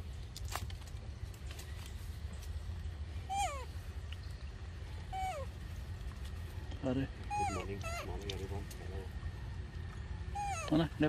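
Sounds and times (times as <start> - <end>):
baby macaque crying calls: 3.2 - 3.8, 5.1 - 5.6, 7.2 - 8.3, 10.2 - 11.0.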